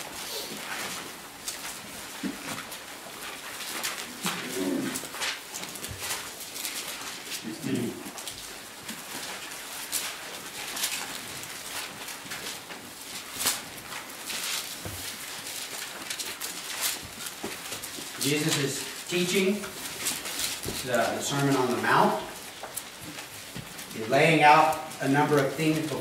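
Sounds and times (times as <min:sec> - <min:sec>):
book pages rustling: 0:00.0 - 0:26.0
low vocal murmurs: 0:04.3 - 0:05.0.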